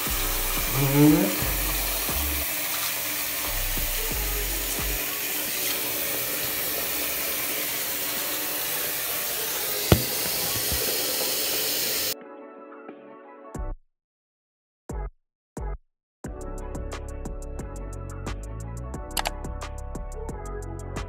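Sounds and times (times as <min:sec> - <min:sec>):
tap running into a sink: 0:05.6 - 0:07.2, 0:09.8 - 0:11.9.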